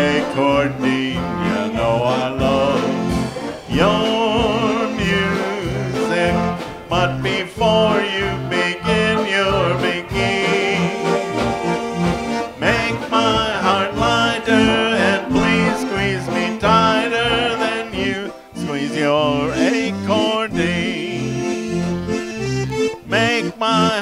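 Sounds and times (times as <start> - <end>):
concertina melody: 0.0 - 24.0.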